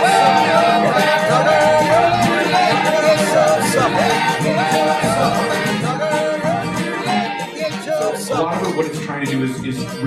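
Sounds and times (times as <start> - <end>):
person singing folk song: 0.0 - 9.6
plucked string instruments: 0.0 - 10.0.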